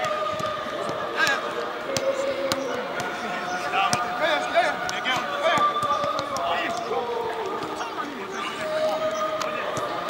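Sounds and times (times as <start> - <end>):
players shouting and chatting: 0.0 - 10.0.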